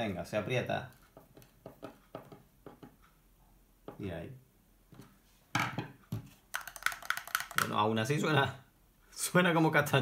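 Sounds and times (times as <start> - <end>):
wooden block rattling: 6.5 - 7.8.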